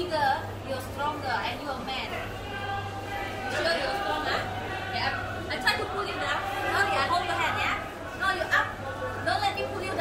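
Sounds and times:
indistinct voices chattering: 0:00.0 - 0:10.0.

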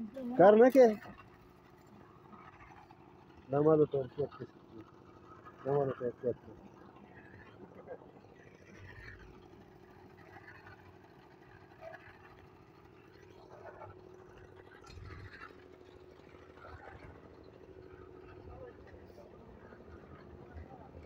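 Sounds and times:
distant voices talking: 0:15.6 - 0:21.0.

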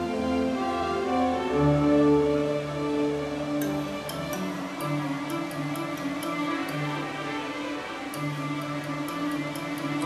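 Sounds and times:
instrumental background music: 0:00.0 - 0:10.0
high ticking percussion: 0:03.6 - 0:10.0.

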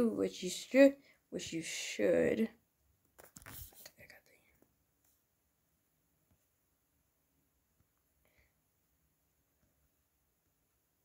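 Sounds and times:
faint whispered voice: 0:03.5 - 0:04.7.

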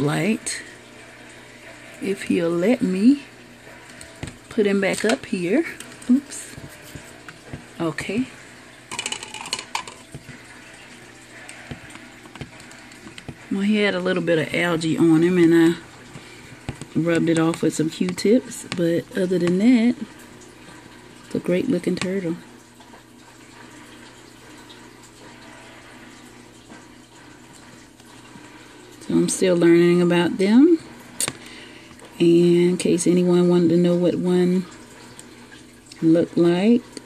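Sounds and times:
faint water trickle: 0:00.0 - 0:37.0
low steady hum: 0:00.0 - 0:37.0.

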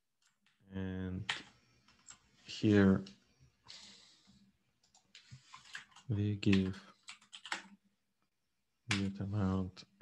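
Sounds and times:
computer keys clicking: 0:04.8 - 0:07.8.

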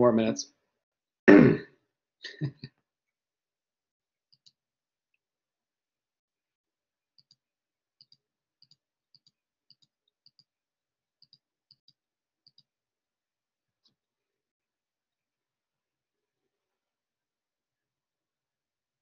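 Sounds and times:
computer mouse clicking: 0:04.3 - 0:04.6, 0:07.2 - 0:07.4, 0:08.0 - 0:10.5, 0:11.2 - 0:12.7.

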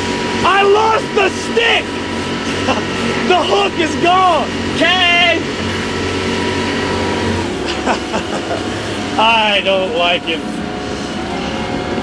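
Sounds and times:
boat diesel engines droning: 0:00.0 - 0:12.0
rush of wind and water: 0:00.0 - 0:12.0
person shouting: 0:00.5 - 0:01.9.

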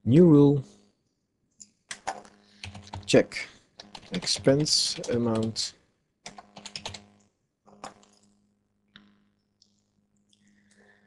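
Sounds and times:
keyboard typing: 0:01.9 - 0:03.2, 0:03.8 - 0:08.4.

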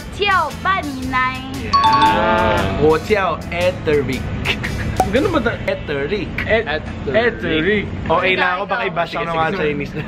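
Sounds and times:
background music: 0:00.0 - 0:03.9, 0:04.6 - 0:05.6.

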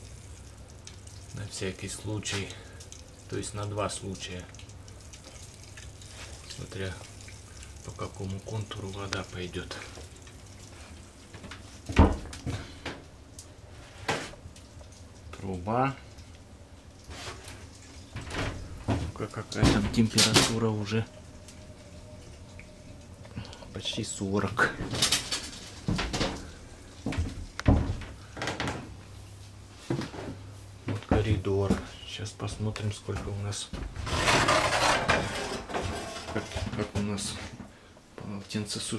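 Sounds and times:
faint low hum: 0:00.0 - 0:38.9
footsteps and knocks in steel room: 0:27.0 - 0:29.0, 0:29.8 - 0:34.1.

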